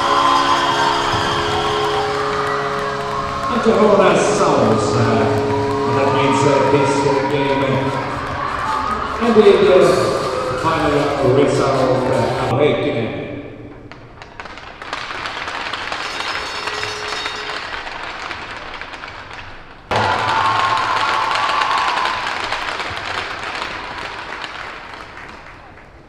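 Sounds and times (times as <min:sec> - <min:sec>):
crowd applauding: 0:00.0 - 0:12.5, 0:13.9 - 0:26.0.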